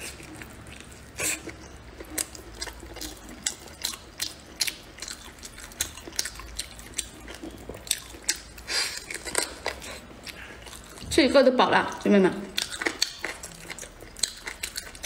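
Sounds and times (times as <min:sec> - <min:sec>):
mouth chewing: 0:00.0 - 0:11.2, 0:11.8 - 0:15.0.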